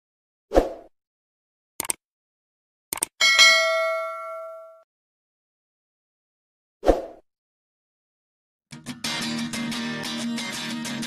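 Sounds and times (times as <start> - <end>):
notification bell ding: 3.2 - 4.8.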